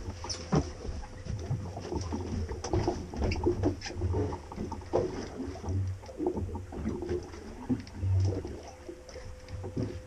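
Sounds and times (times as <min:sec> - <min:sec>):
water lapping against boat hull: 0:00.0 - 0:10.0.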